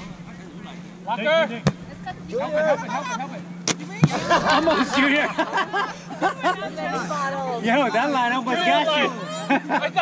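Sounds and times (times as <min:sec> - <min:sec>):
volleyball hitting ground: 0:01.6 - 0:02.0, 0:03.6 - 0:04.4.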